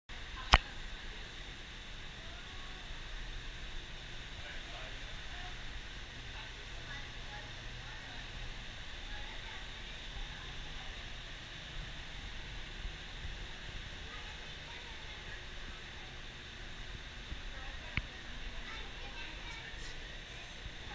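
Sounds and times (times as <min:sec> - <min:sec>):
low rumble and hiss: 0:00.1 - 0:20.9
distant people talking: 0:00.3 - 0:20.9.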